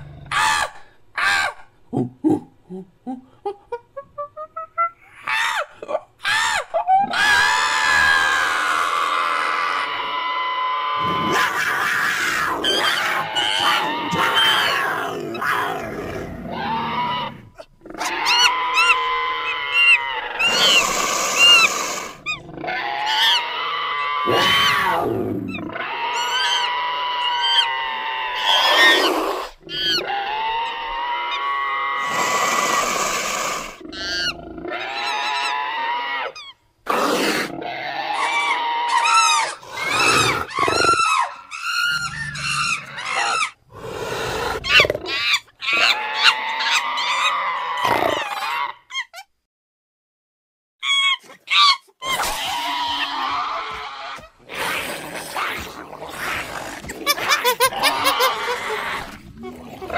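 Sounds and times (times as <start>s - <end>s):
ape-like screeches hoots and roars: 6.3s - 49.1s, 50.8s - 59.9s.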